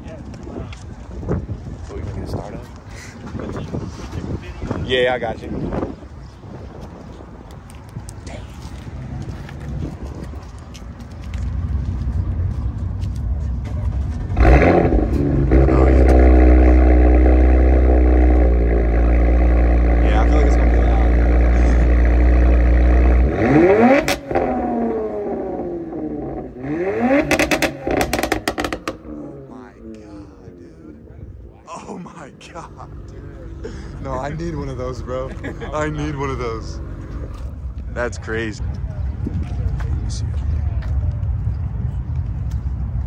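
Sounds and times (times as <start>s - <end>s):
car engine starting and idling: 13.6s - 30.4s
exhaust pops: 13.7s - 29.2s
engine revving: 14.2s - 30.2s.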